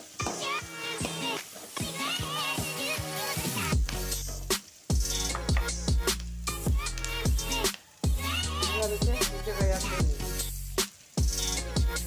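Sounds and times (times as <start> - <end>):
spatula stirring in pan: 0.0 - 5.8
onions sizzling in hot oil: 0.0 - 12.0
music with steady beat: 0.2 - 12.0.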